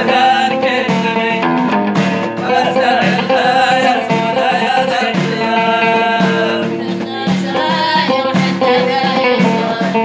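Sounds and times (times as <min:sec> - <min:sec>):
person singing: 0:00.0 - 0:01.6, 0:02.4 - 0:10.0
plucked lute rhythm: 0:00.0 - 0:10.0.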